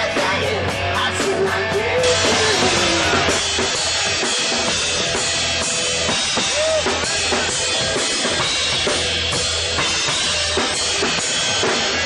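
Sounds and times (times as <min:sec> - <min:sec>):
drum kit beat: 0:00.0 - 0:12.0
live rock band playing: 0:00.0 - 0:12.0.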